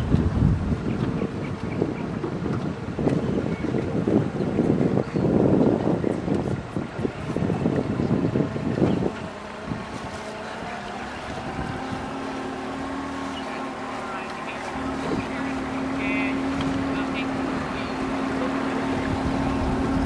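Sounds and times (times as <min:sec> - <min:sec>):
outboard motor droning: 0:00.0 - 0:20.0
wind gusting on microphone: 0:00.0 - 0:20.0.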